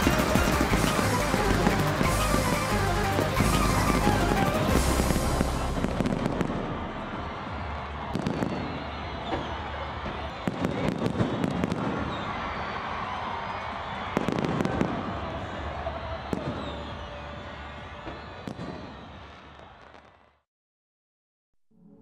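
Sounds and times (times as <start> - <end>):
sharp firework reports: 0.0 - 7.4
music: 0.0 - 11.2, 13.6 - 19.9
fireworks crackling and popping: 0.0 - 13.2, 13.8 - 17.1.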